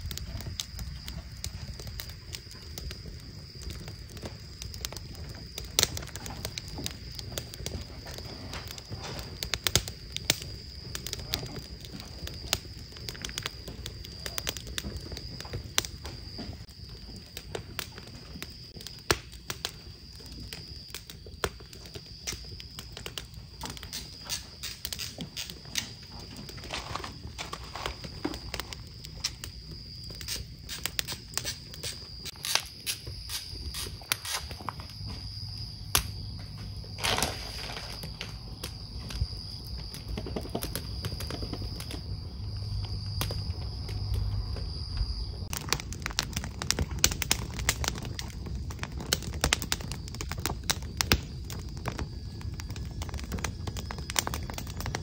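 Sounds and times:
wood fire crackling: 0.0 - 55.0.

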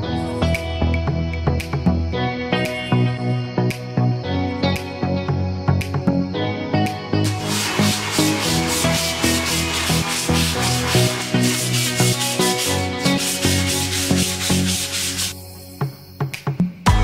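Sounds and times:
background music: 0.0 - 17.0
sandpaper rubbing on wood: 7.2 - 15.4.

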